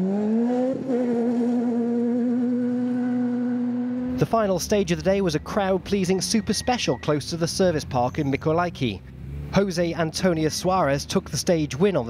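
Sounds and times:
rally car engine at high revs: 0:00.0 - 0:04.3, 0:09.0 - 0:11.4.

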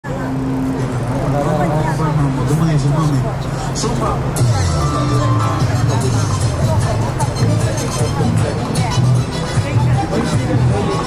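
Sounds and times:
traffic engines idling: 0:00.0 - 0:11.0
people talking: 0:00.1 - 0:11.0.

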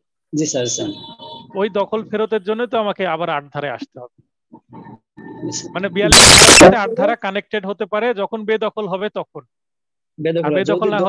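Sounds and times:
man speaking: 0:05.6 - 0:09.4, 0:10.4 - 0:11.0.

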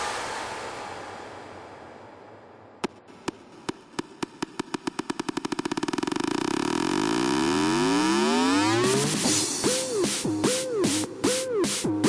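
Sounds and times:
drum roll speeding up: 0:02.8 - 0:12.0
rising synth sweep: 0:04.6 - 0:09.9.

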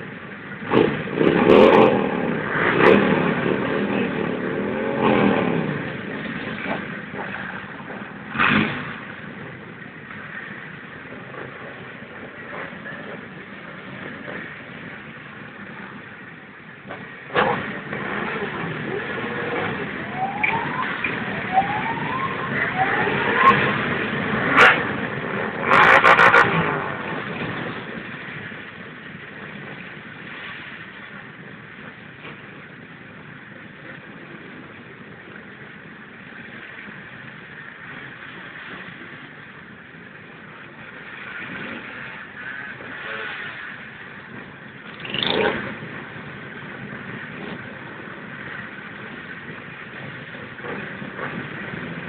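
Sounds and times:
motorcycle engines revving: 0:00.0 - 0:52.0.

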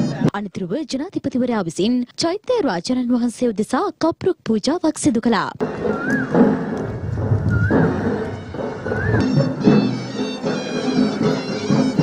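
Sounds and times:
reed pipe ceremonial music: 0:05.6 - 0:12.0.

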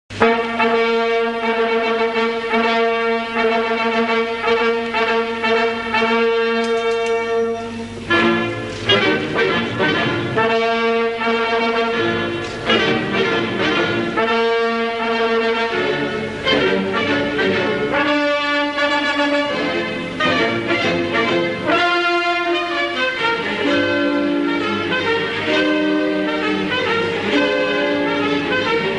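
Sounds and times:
orchestral brass note held: 0:00.1 - 0:17.2, 0:17.9 - 0:28.9.

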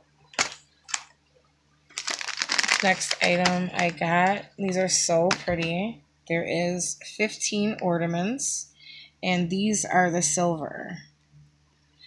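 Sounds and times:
items knocking on tabletop: 0:05.3 - 0:05.7.

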